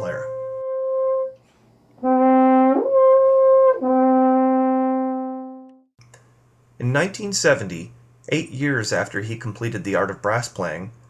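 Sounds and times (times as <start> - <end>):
french horn notes: 0.0 - 1.4, 2.0 - 5.8.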